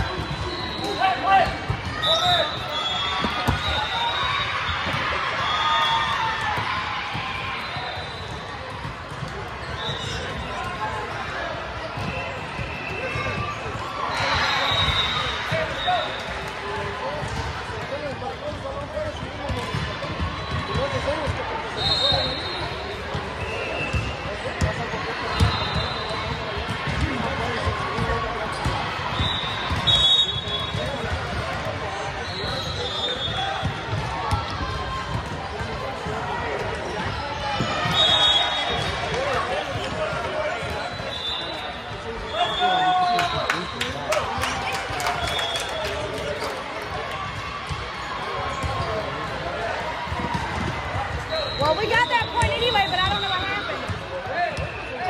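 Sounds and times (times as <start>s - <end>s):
echoing hubbub of voices: 0.0s - 55.0s.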